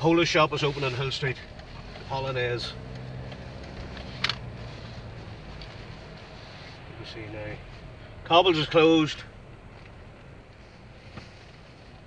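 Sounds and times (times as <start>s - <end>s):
car engine and road hum: 0.0s - 12.0s.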